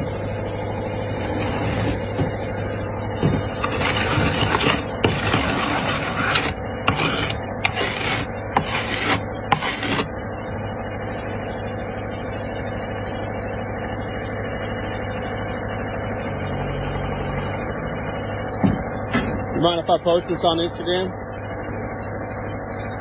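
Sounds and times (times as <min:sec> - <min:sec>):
steady engine hum: 0:00.0 - 0:23.0
plate scraping across concrete: 0:01.1 - 0:02.3, 0:03.3 - 0:10.1.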